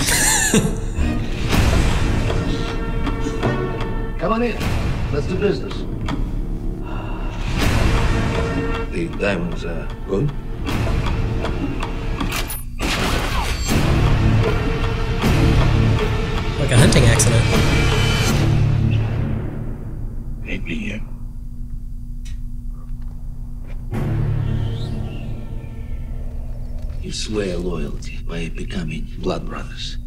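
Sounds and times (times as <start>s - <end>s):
low rumbling trailer music: 0.9s - 28.3s.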